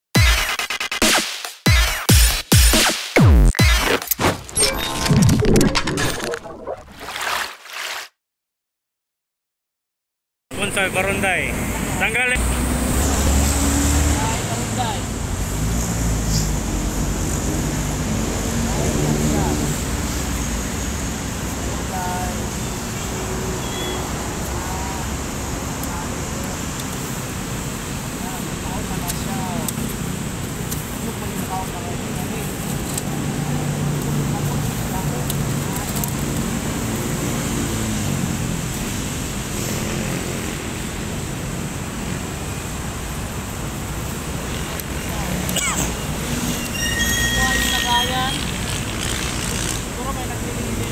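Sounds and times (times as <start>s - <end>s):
road traffic rumble: 10.5s - 50.9s.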